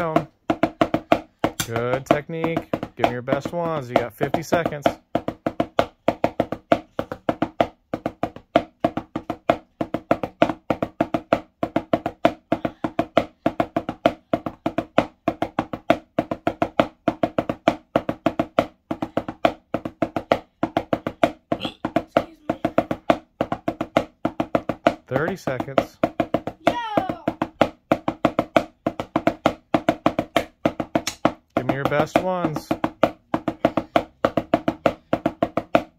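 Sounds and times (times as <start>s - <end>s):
drumsticks on practice pad: 1.4s - 5.0s, 30.3s - 35.8s.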